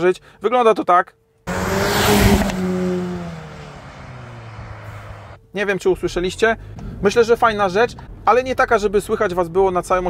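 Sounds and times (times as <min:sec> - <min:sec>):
car engine accelerating hard: 0:01.5 - 0:05.4.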